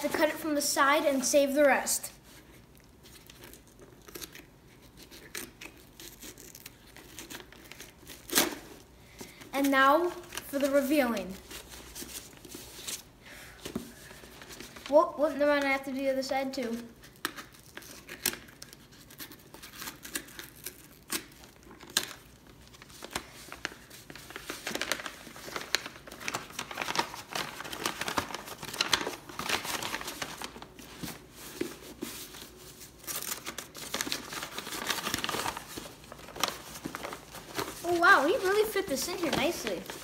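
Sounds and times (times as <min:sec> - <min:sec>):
paper being torn and crinkling: 0:03.1 - 0:08.6, 0:23.0 - 0:31.1, 0:31.9 - 0:40.0.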